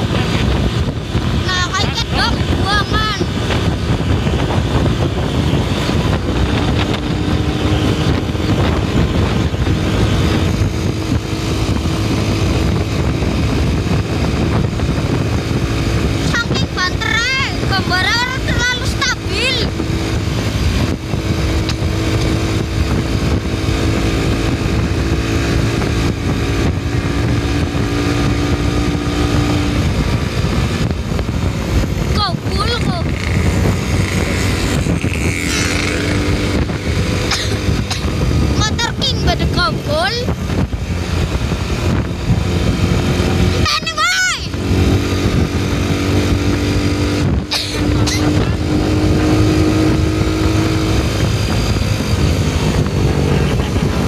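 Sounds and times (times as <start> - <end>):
vehicle engine running: 0.0 - 54.0
wind and road noise: 0.0 - 54.0.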